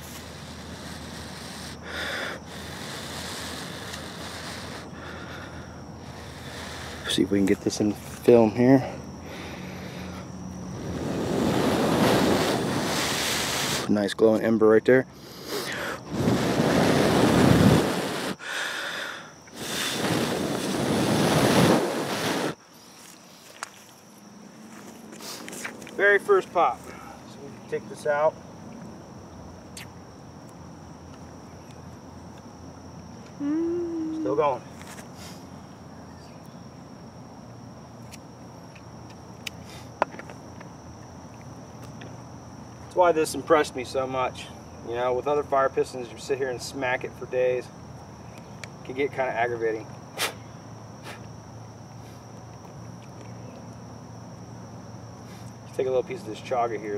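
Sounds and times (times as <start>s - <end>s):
high-pitched insect drone: 0.0s - 56.9s
air buffeting microphone: 9.4s - 13.9s, 15.8s - 18.4s, 19.5s - 22.6s.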